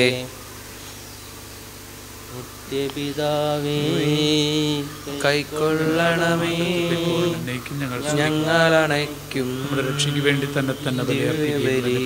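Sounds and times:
man chanting a held note: 0:02.3 - 0:12.0.

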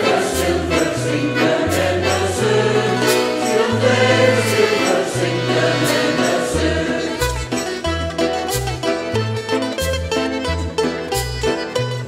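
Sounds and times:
mixed choir singing: 0:00.0 - 0:07.4
accordion: 0:00.0 - 0:12.0
strummed mandolin: 0:00.0 - 0:12.0.

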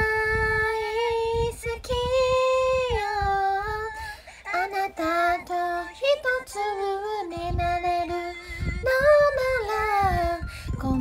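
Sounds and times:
woman singing: 0:00.0 - 0:11.0.

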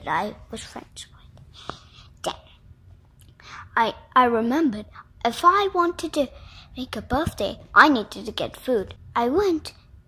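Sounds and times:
person speaking: 0:00.0 - 0:02.6
low background hum: 0:00.0 - 0:10.0
faint breathy sounds: 0:03.4 - 0:03.8.

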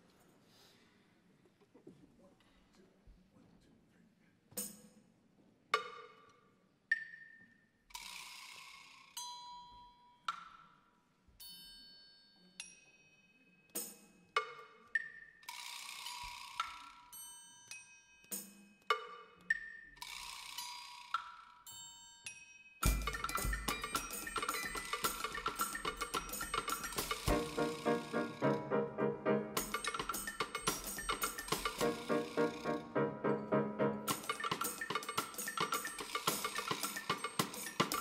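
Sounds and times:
bell-like percussion tones: 0:11.4 - 0:38.0.

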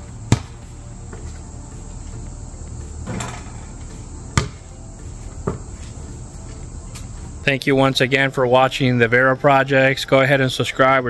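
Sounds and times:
insects chirring: 0:00.0 - 0:11.0
basketball bouncing on concrete: 0:00.3 - 0:01.4, 0:03.0 - 0:04.8, 0:05.4 - 0:05.9.

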